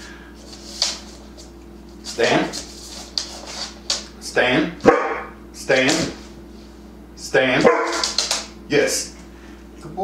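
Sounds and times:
dog barking: 4.8s - 5.4s, 7.6s - 8.2s.

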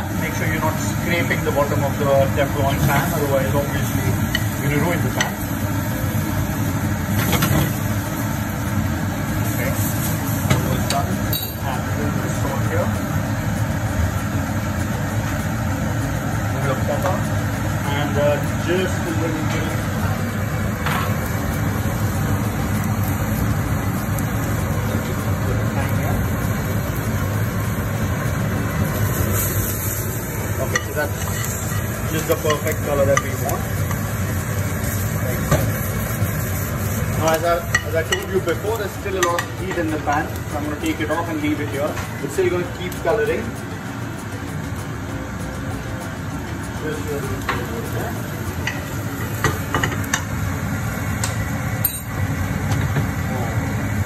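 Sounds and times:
mushrooms sizzling in a frying pan: 0.0s - 54.0s
steady low hum: 0.0s - 54.0s.

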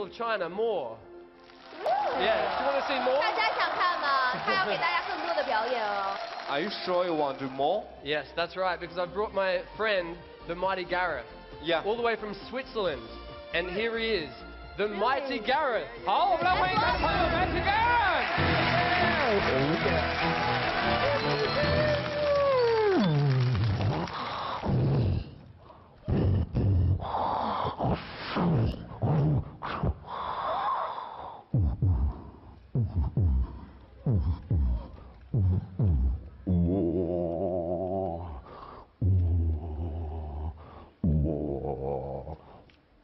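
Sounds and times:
loud stage music: 16.4s - 23.0s
man making low wavering vocal tones: 32.8s - 38.4s, 39.0s - 42.6s.

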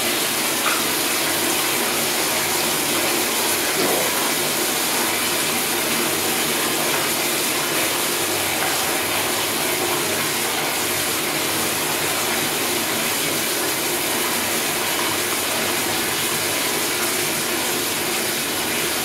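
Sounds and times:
toilet water rushing into bowl: 0.0s - 19.0s.

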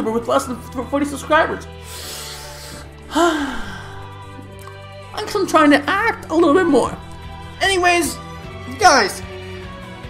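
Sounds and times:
background music: 0.0s - 10.0s
person sighing: 2.4s - 4.8s.

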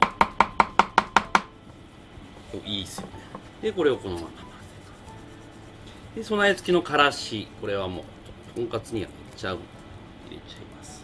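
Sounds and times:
knife chopping on wooden board: 0.0s - 1.5s.

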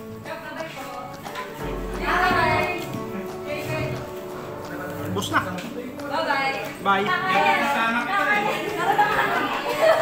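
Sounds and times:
overlapping conversational chatter: 0.0s - 10.0s.

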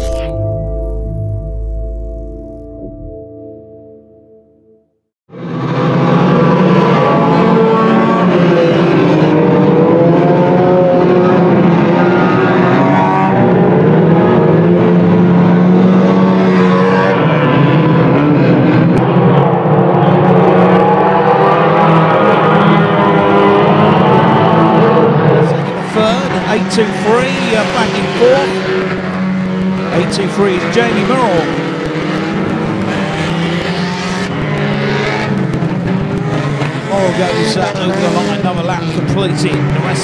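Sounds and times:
racing car engines revving: 5.3s - 40.0s.

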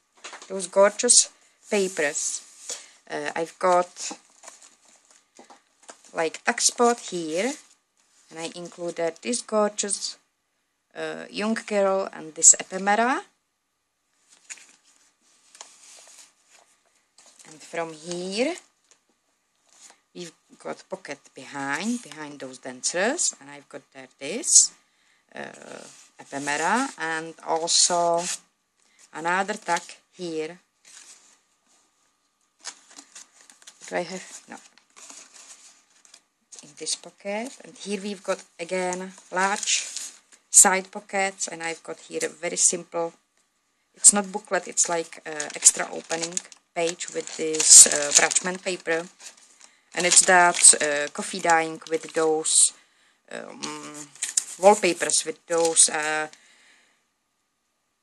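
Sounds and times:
person speaking: 0.4s - 4.2s, 6.0s - 7.7s, 8.3s - 10.2s, 17.4s - 18.7s, 20.2s - 28.4s, 29.1s - 30.6s, 33.8s - 34.7s, 36.5s - 43.2s, 44.0s - 49.3s, 50.0s - 56.4s
paper rustling: 1.7s - 9.3s, 14.2s - 19.0s, 30.8s - 40.4s, 44.1s - 52.3s, 53.6s - 56.4s.

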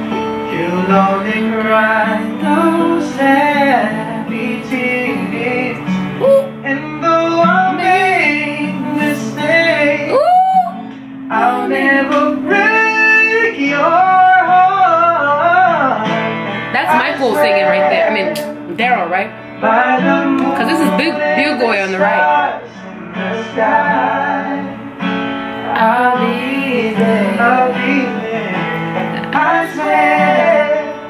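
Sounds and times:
acoustic guitar: 0.0s - 31.0s
men singing in harmony: 0.2s - 18.8s, 19.4s - 31.0s.

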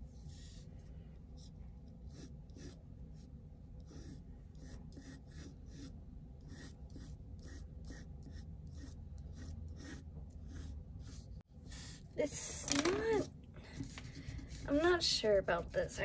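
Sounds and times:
pencil scratching on paper: 0.0s - 12.0s, 13.8s - 15.1s
air conditioner hum: 0.0s - 16.0s.

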